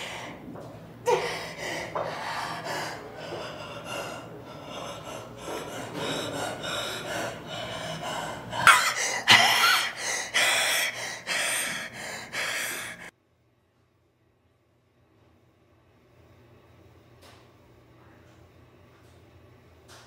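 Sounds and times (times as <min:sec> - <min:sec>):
man breathing hard through teeth: 0:01.1 - 0:13.1.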